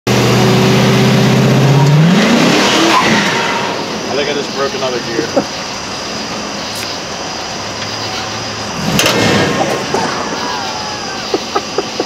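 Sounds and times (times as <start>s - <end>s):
truck engine revving: 0.1s - 12.0s.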